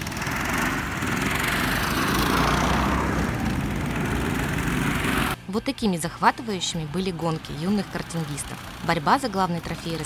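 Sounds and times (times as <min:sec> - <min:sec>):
go-kart engines buzzing past: 0:00.0 - 0:05.5, 0:07.1 - 0:10.0.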